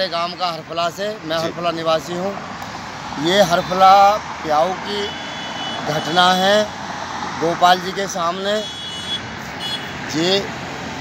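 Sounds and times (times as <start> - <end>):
roadside traffic noise: 0.0 - 11.0.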